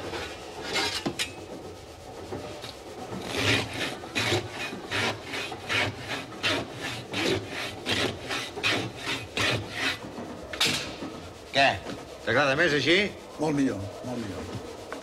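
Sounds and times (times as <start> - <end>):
hand saw cutting: 3.1 - 11.0.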